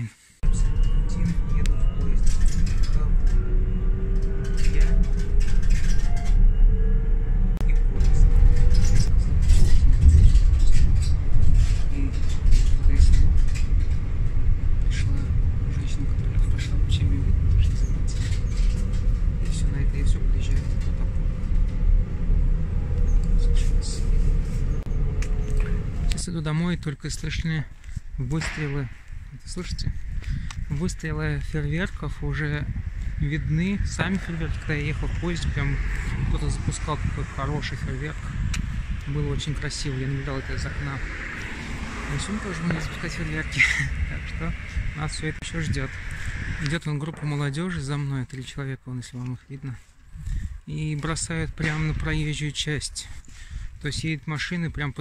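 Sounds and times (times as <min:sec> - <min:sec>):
train carriage rumbling on rails: 0:00.4 - 0:26.5
faint rising whine: 0:00.4 - 0:26.9, 0:29.3 - 0:48.4
clicks and rattles: 0:04.1 - 0:06.4.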